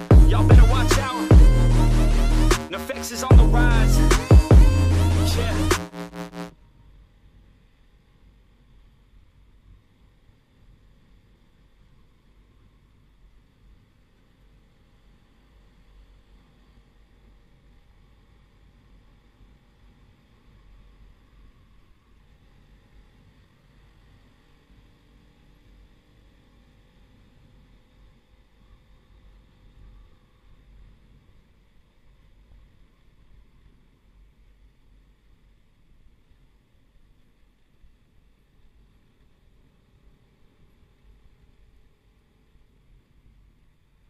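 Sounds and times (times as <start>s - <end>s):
background music: 0.0s - 6.5s
motorcycle engine drone: 0.0s - 6.5s.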